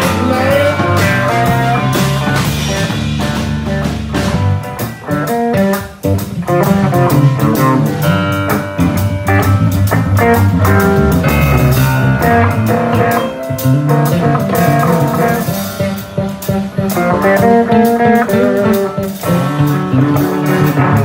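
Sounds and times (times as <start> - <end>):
live blues-rock band: 0.0 - 21.0.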